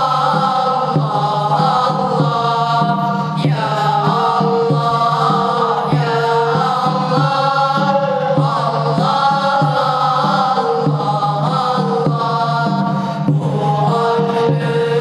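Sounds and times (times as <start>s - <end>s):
boys chanting in unison: 0.0s - 15.0s.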